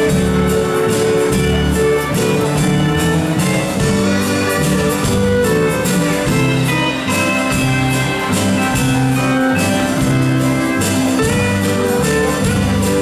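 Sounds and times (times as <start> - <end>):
country band playing: 0.0 - 13.0
drum kit beat: 0.0 - 13.0
guitar: 0.0 - 13.0.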